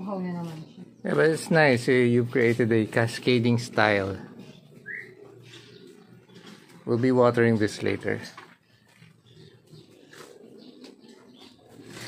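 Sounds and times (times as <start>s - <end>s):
faint bird calls: 4.2s - 6.8s.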